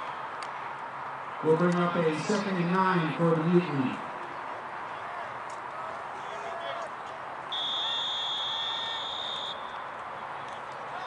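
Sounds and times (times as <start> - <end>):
murmur of distant voices: 0.0 - 11.0
referee's whistle blast: 7.5 - 9.8.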